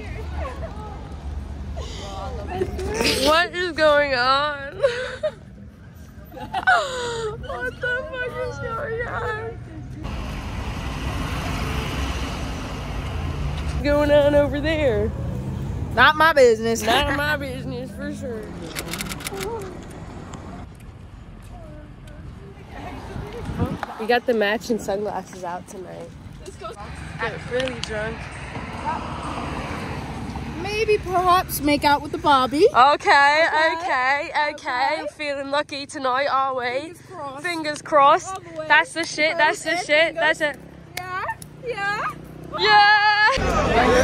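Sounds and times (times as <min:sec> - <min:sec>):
car passing: 0:00.0 - 0:36.0, 0:36.6 - 0:44.0
vehicle engine rumbling: 0:00.0 - 0:44.0.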